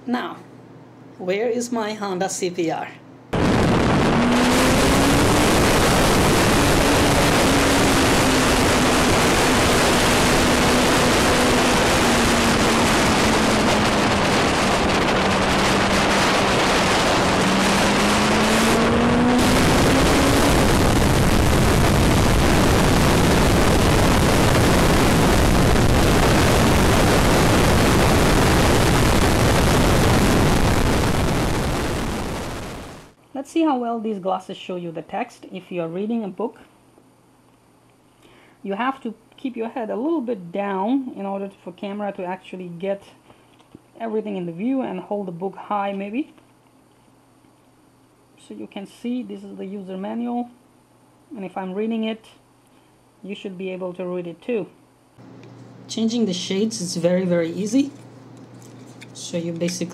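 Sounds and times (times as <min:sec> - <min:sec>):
wind rush on microphone: 0:03.4 - 0:33.0
motorcycle engine: 0:04.0 - 0:21.0.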